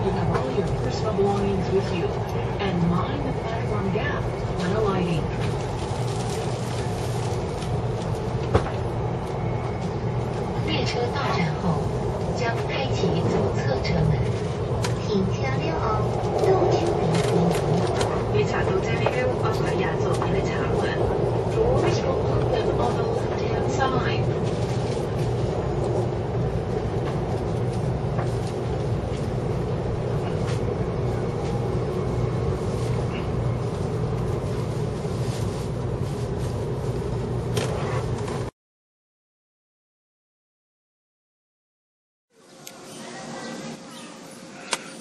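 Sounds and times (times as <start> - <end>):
voices: 0.0 - 5.5, 10.6 - 24.5
train rumble inside carriage: 0.0 - 38.5.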